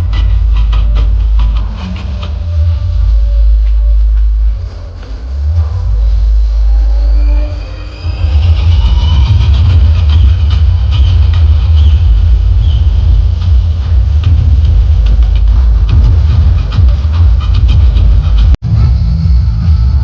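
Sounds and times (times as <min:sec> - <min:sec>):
loud music with heavy bass: 0:00.0 - 0:20.0.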